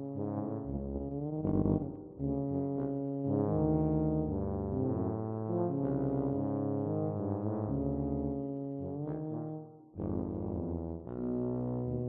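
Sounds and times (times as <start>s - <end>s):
tubas playing low notes: 0.0s - 12.0s.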